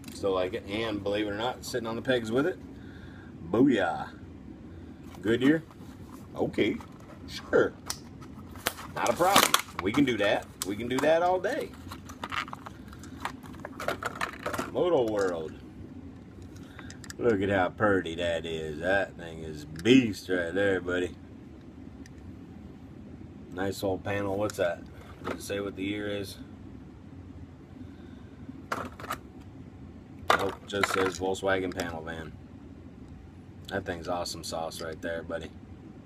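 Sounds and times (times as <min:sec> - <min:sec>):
low steady hum: 0:00.0 - 0:36.0
clicks and crackles of plastic packaging: 0:08.6 - 0:15.5.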